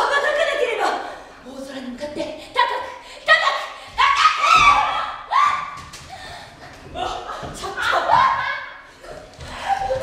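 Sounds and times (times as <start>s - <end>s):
woman's excited cries: 7.0s - 8.8s.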